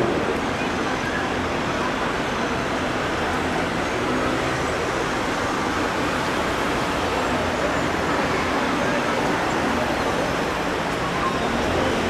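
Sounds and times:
cars driving through intersection: 0.0s - 12.0s.

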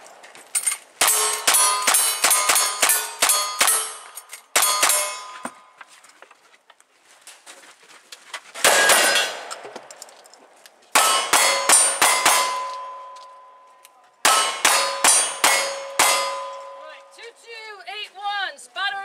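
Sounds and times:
steel targets ringing: 0.0s - 5.7s, 8.7s - 9.6s, 11.0s - 17.2s.

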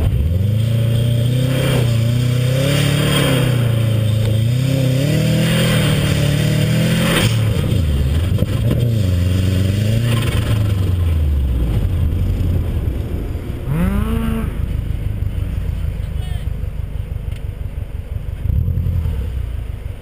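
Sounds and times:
car engine revving: 0.0s - 20.0s.

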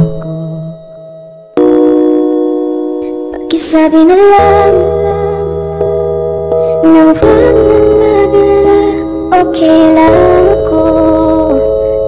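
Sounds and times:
love song music: 0.0s - 12.0s
sustained keyboard chord: 0.0s - 12.0s.

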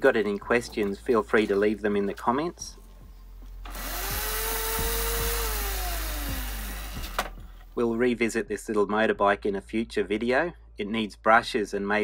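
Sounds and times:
electric motor whining: 3.7s - 7.3s.

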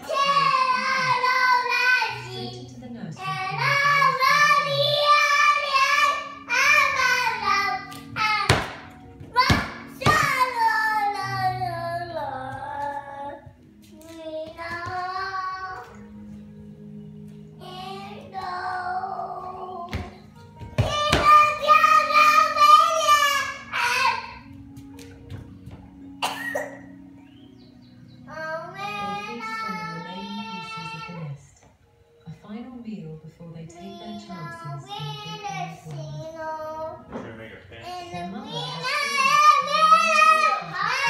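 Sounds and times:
girl singing: 0.0s - 16.1s, 17.6s - 24.5s, 28.3s - 31.1s, 33.8s - 37.2s, 37.8s - 41.0s.

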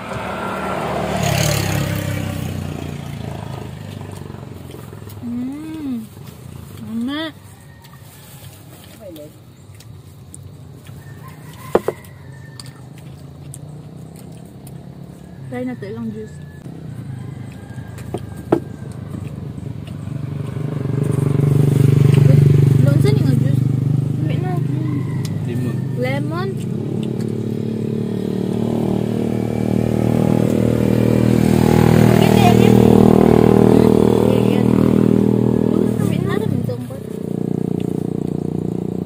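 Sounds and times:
motorcycle engine running: 0.0s - 7.5s, 10.0s - 39.0s.

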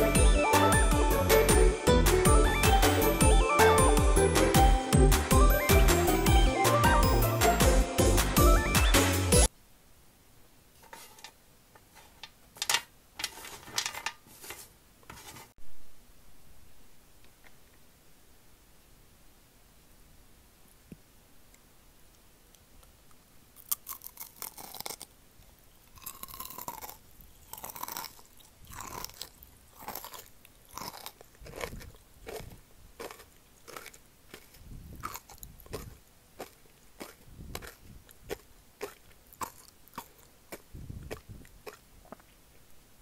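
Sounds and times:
person chewing crunchy candy: 23.6s - 25.1s, 25.8s - 42.3s
sugar crust crunching: 23.6s - 42.4s.

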